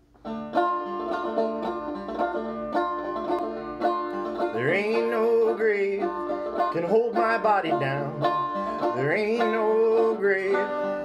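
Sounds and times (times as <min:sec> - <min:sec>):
banjo playing: 0:00.0 - 0:11.0.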